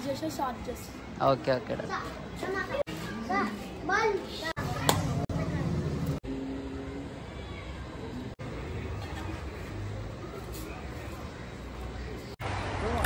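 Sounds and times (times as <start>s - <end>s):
children calling and chattering: 0.0s - 12.4s.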